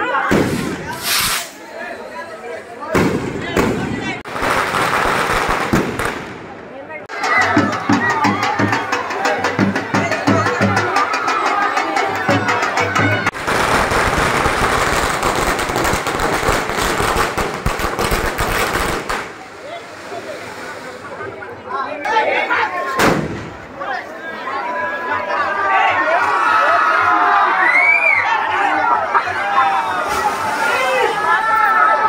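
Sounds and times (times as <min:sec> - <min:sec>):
crowd voices: 0:00.0 - 0:32.0
firecrackers crackling: 0:00.2 - 0:01.8, 0:02.9 - 0:06.8, 0:08.8 - 0:21.2
drum beating steadily: 0:07.1 - 0:18.5.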